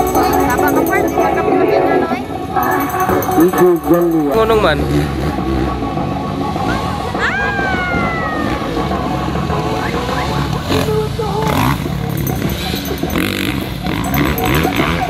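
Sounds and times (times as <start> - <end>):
dirt bike engines running: 0.0 - 15.0.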